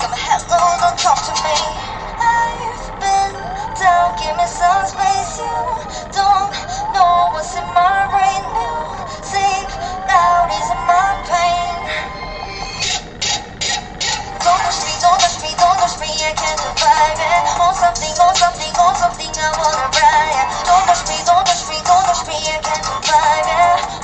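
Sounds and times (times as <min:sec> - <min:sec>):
woman singing: 0:00.0 - 0:12.4, 0:14.1 - 0:24.0.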